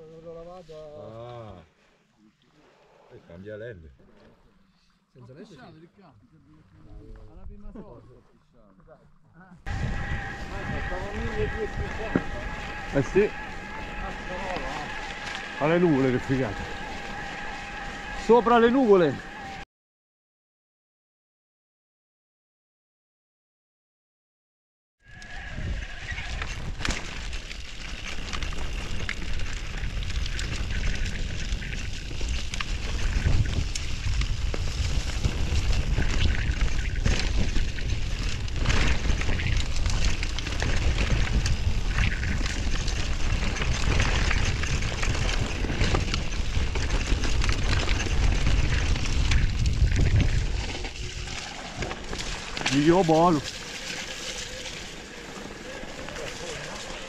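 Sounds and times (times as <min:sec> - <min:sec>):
wind buffeting microphone: 0:09.7 - 0:18.1, 0:28.2 - 0:53.4
tyres rumbling over stones: 0:09.7 - 0:19.6, 0:25.1 - 0:57.0
bike clicks and rattles: 0:26.0 - 0:57.0.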